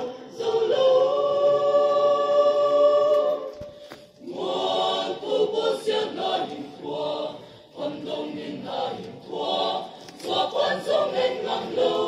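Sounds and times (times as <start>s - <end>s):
mixed choir singing: 0.0s - 12.0s.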